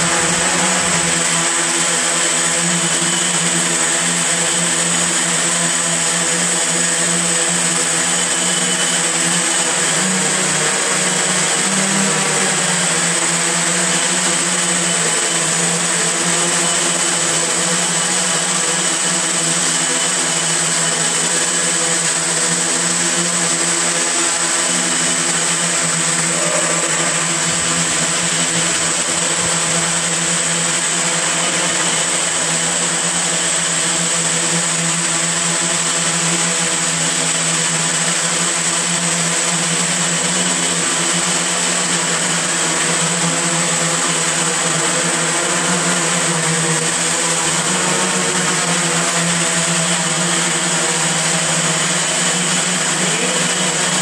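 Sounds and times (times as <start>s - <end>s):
drone propellers buzzing: 0.0s - 54.0s.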